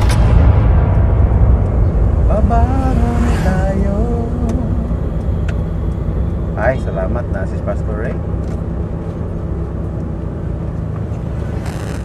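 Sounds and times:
wind rumble on microphone: 0.0s - 7.5s
vehicle engine and road noise: 0.0s - 12.0s
person's voice: 6.6s - 8.2s.

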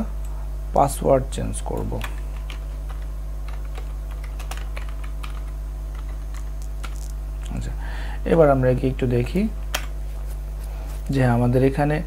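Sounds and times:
low electrical hum: 0.0s - 12.0s
typing on computer keyboard: 2.0s - 7.1s.

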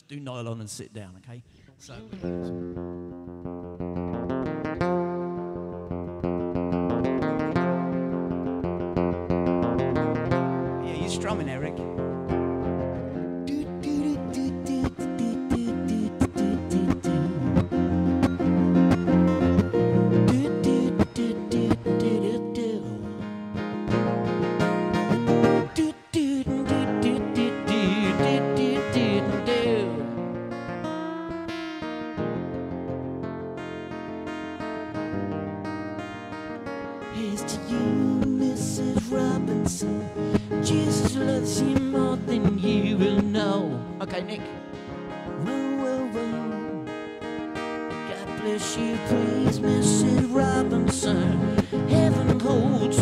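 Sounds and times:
person singing: 1.8s - 2.7s, 13.2s - 23.3s, 25.5s - 30.4s, 37.1s - 47.2s, 48.0s - 53.0s
acoustic guitar strumming: 2.0s - 53.0s.

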